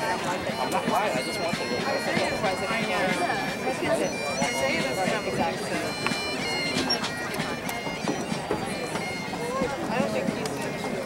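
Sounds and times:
people chattering: 0:00.0 - 0:11.0
wind instruments playing melody: 0:00.0 - 0:11.0.

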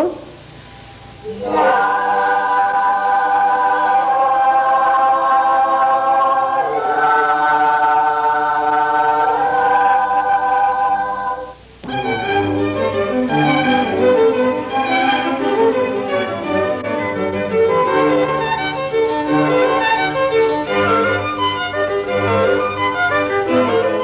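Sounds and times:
children's choir singing: 0:01.2 - 0:24.0.

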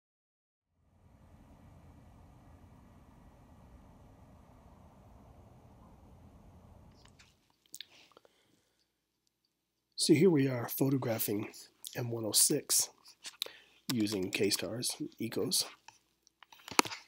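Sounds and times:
faint low rumbling: 0:00.7 - 0:07.9.

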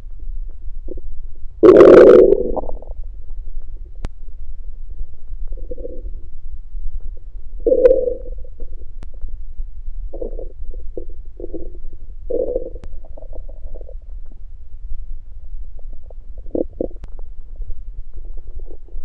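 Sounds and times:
stomach growling and gurgling: 0:00.9 - 0:03.0, 0:05.4 - 0:06.2, 0:07.6 - 0:09.0, 0:10.1 - 0:14.4, 0:15.7 - 0:19.0.

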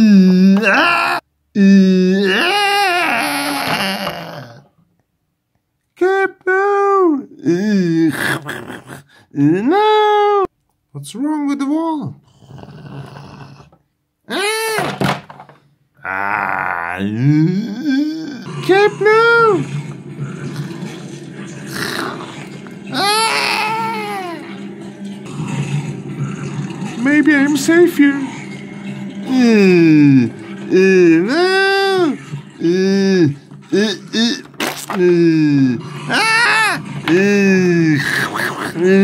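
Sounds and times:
person growling like a zombie: 0:00.0 - 0:04.7, 0:07.3 - 0:09.6, 0:12.3 - 0:14.8, 0:16.0 - 0:19.0, 0:21.7 - 0:24.5, 0:29.3 - 0:39.0
person making short cries and grunts: 0:00.0 - 0:04.7
person making strained cry: 0:00.0 - 0:04.7, 0:07.4 - 0:10.1, 0:14.3 - 0:14.9, 0:16.0 - 0:18.5, 0:22.9 - 0:24.5, 0:30.7 - 0:39.0
breathy snarl: 0:07.5 - 0:09.4, 0:12.2 - 0:13.8, 0:19.7 - 0:24.6.

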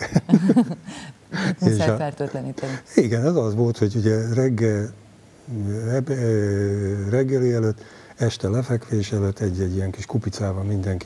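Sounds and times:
man's drawn-out hesitation sound: 0:01.4 - 0:04.9.

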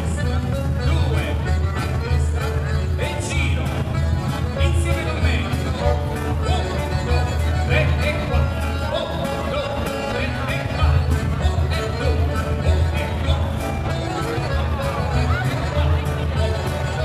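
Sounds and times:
button accordion: 0:00.0 - 0:17.0
folk dance band playing: 0:00.0 - 0:17.0
steady bass: 0:00.0 - 0:17.0.

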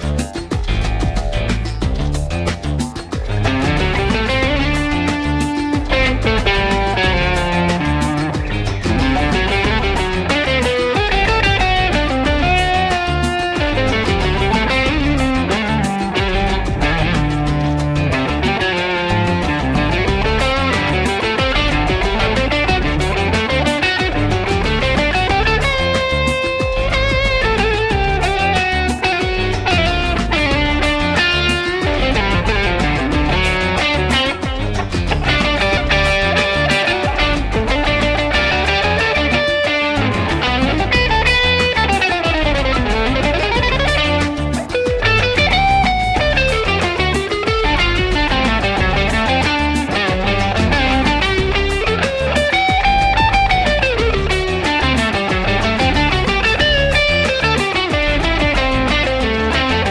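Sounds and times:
bass-heavy backing groove: 0:00.0 - 0:59.9
electric guitar solo: 0:00.0 - 0:59.9.

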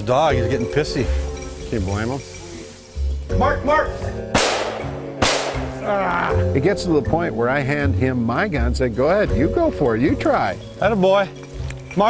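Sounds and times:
background music: 0:00.0 - 0:12.0
shotgun shots: 0:04.3 - 0:05.8.

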